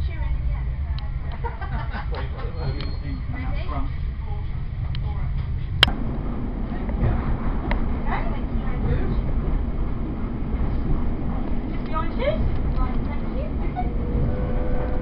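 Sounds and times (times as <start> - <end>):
train rumbling: 0.0 - 15.0.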